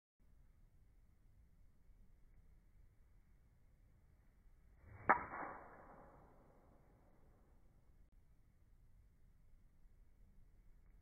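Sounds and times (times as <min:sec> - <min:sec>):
golf ball impact crack: 0:04.9 - 0:06.5.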